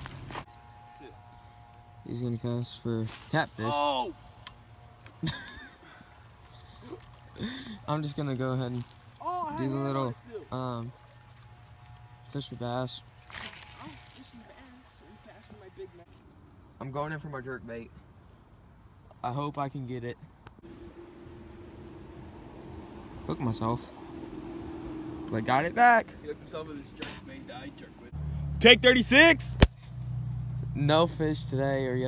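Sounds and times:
faint steady hum: 20.5 - 26.7.

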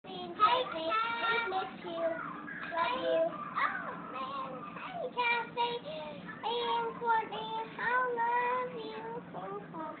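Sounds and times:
child singing: 0.0 - 10.0.

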